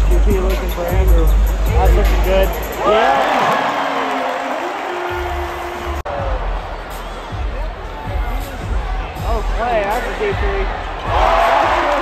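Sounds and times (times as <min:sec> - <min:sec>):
arena music over loudspeakers: 0:00.0 - 0:12.0
crowd shouting: 0:10.7 - 0:12.0.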